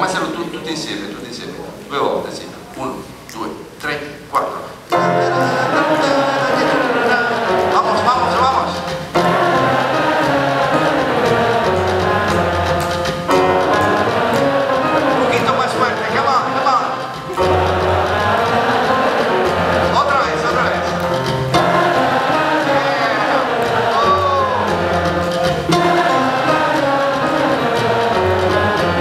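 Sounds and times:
person speaking: 0.0 - 9.1, 15.0 - 18.4
live jazz group with singer: 0.0 - 29.0.

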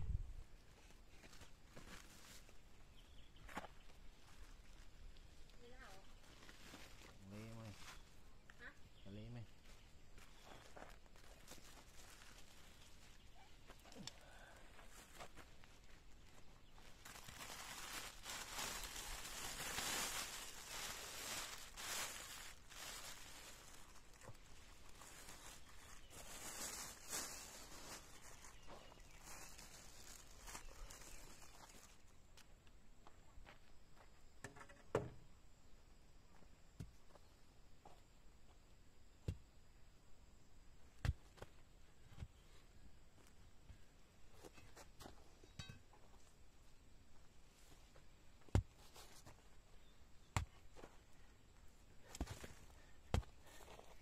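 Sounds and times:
plastic bags rustling: 16.8 - 32.0.

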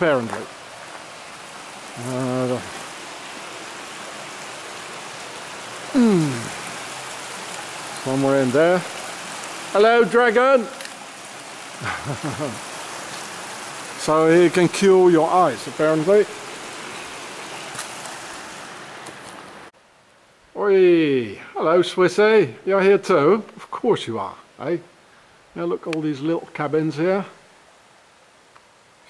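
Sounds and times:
running water: 0.0 - 19.7.

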